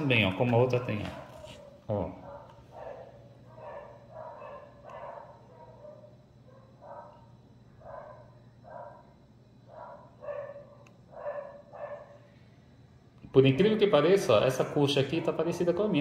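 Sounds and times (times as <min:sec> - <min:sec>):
dog barking faintly: 0:00.7 - 0:12.2.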